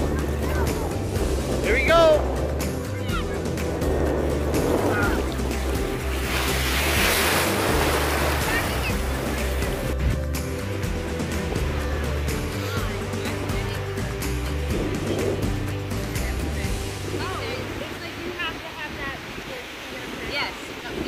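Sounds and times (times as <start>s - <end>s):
waves breaking in shallow surf: 0.0s - 10.2s, 10.8s - 21.0s
background music: 0.0s - 19.0s.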